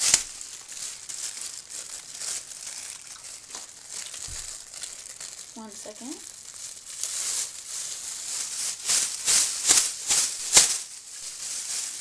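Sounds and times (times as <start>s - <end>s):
irregular crackling rustle: 0.0s - 12.0s.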